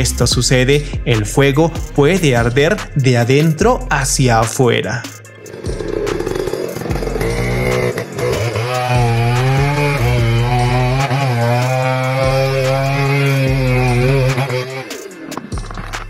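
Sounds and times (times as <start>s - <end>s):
chainsaw cutting wood: 5.5s - 16.0s.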